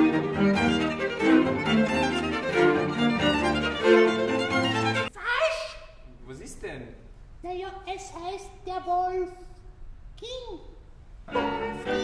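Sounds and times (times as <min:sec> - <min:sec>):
string trio playing: 0:00.0 - 0:05.1, 0:11.2 - 0:12.0.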